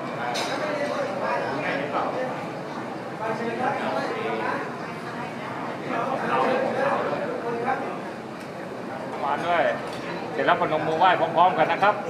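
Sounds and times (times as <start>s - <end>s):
people talking in a room: 0.0s - 12.0s.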